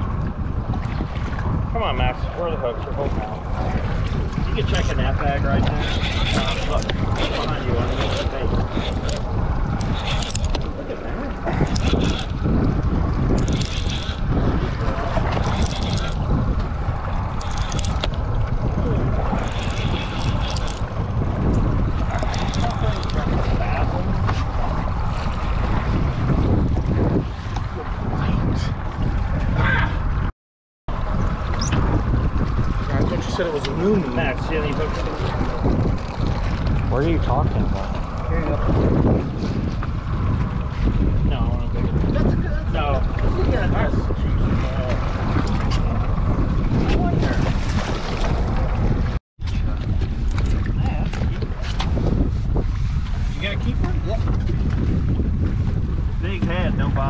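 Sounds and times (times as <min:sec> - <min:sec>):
sea waves washing: 0:00.0 - 0:30.1, 0:30.9 - 0:49.8
wind buffeting microphone: 0:00.0 - 0:30.3, 0:30.9 - 0:57.0.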